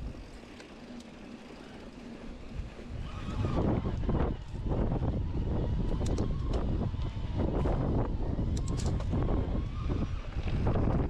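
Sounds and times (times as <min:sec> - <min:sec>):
wind buffeting microphone: 0:02.1 - 0:11.0.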